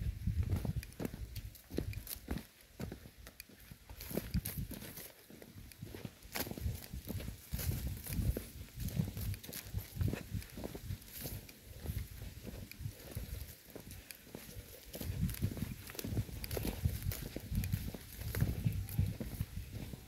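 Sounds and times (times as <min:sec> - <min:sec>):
footsteps on dry ground and grass: 0:00.0 - 0:20.0.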